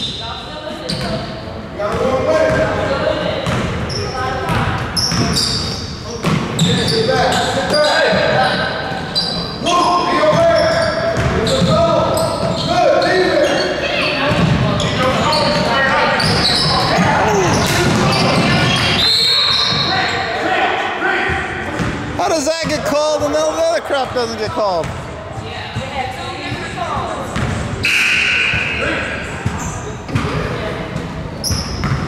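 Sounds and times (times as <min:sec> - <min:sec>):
ball bouncing on hardwood court: 0:04.4 - 0:05.4, 0:06.2 - 0:06.8, 0:11.1 - 0:11.8, 0:24.4 - 0:27.7, 0:31.0 - 0:32.0.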